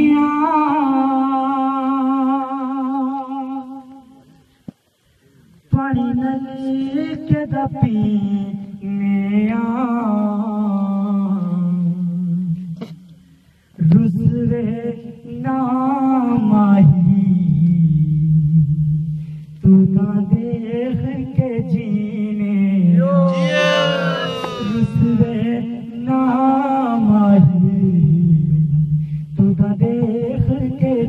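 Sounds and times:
man singing into a microphone: 0.0 - 3.8, 5.7 - 12.6, 13.8 - 18.6, 19.7 - 28.8, 29.4 - 31.0
man singing unaccompanied: 20.0 - 27.9
pulsing low tone accompaniment: 23.2 - 25.8.

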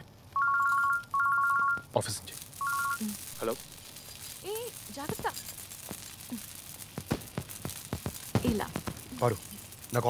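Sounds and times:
mobile phone ringtone trill: 0.4 - 1.8, 2.6 - 3.0.

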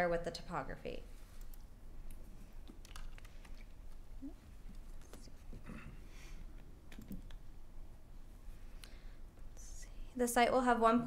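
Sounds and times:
keyboard keystrokes: 6.9 - 7.4.

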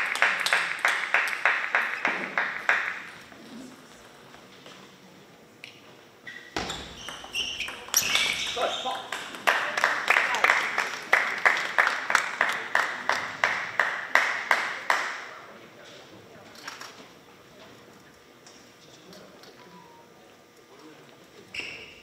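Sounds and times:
people clapping: 0.0 - 3.4, 7.8 - 15.5.

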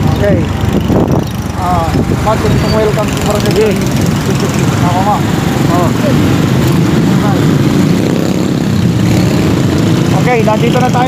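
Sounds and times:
wind noise on microphone: 0.0 - 4.8
vehicle engine rumbling: 0.0 - 11.0.

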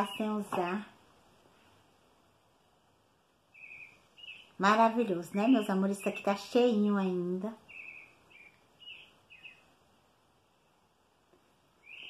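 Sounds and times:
faint bird chirps: 0.0 - 0.8, 3.4 - 12.0.

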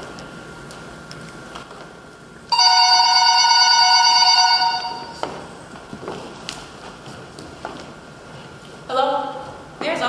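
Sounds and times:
telephone ringing: 2.5 - 5.2.

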